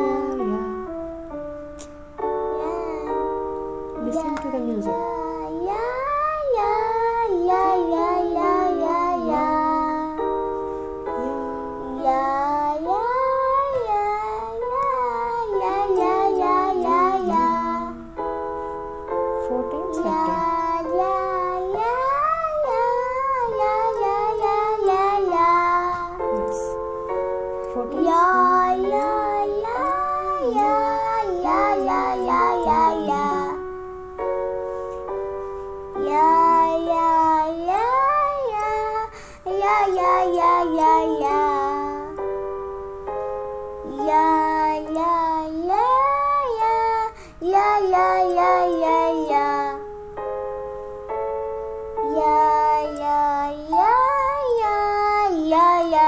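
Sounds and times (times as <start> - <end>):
boy singing: 0.0 - 0.8, 2.6 - 3.3, 4.0 - 10.4, 11.1 - 18.3, 19.4 - 26.8, 27.7 - 33.7, 36.0 - 42.2, 43.9 - 49.8, 52.0 - 56.0
instrumental accompaniment: 0.0 - 56.0.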